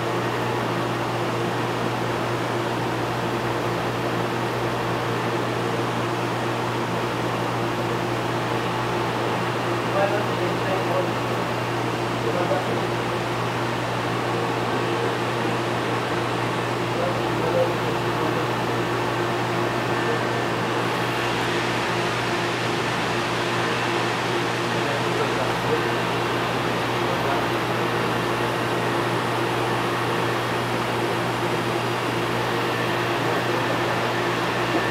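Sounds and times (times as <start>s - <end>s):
aquarium pumps humming: 13.2s - 34.9s.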